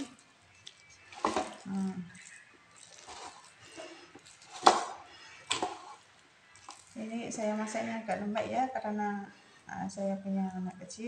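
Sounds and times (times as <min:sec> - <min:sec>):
rice paddle stirring rice in pot: 0:01.2 - 0:01.8.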